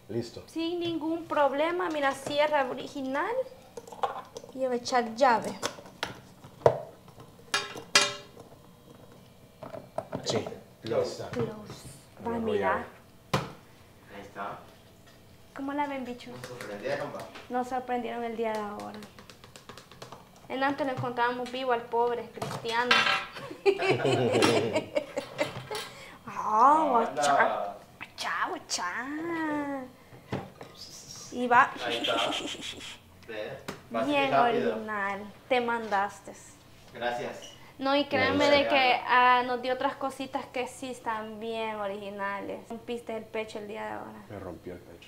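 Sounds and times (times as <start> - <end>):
drawn-out vocal call: 31.8 - 33.0.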